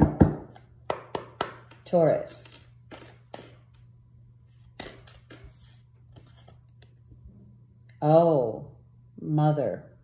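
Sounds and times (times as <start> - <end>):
faint low hum: 0.4 - 10.0
cards being shuffled: 0.5 - 7.1.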